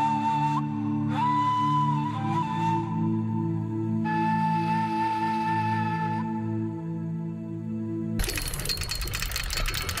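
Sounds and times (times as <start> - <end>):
fast mechanical clattering: 8.2 - 10.0.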